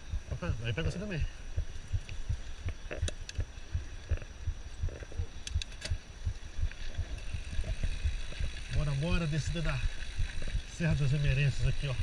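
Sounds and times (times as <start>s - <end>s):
mountain bike on rough dirt trail: 0.0s - 12.0s
sharp clicks and rattles: 1.6s - 12.0s.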